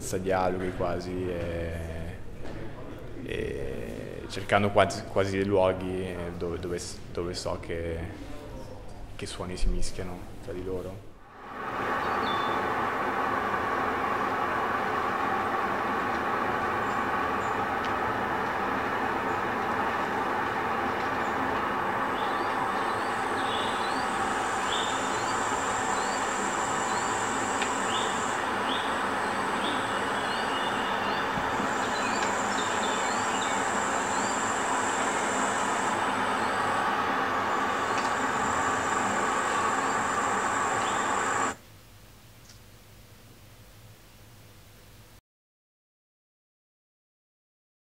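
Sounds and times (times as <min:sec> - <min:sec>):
dense rumbling ambience: 0:11.3 - 0:41.6
high hiss: 0:11.3 - 0:41.6
short rising high chirps: 0:11.7 - 0:13.3.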